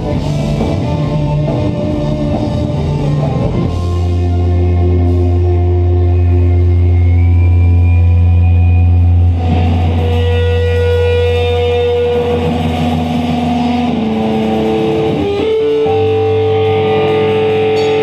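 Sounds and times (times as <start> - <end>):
electric guitars ringing: 0.0 - 18.0.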